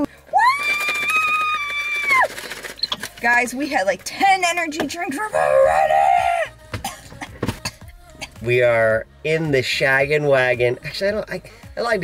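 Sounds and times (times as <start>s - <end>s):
woman crying woo: 0.3s - 2.2s, 5.3s - 6.5s.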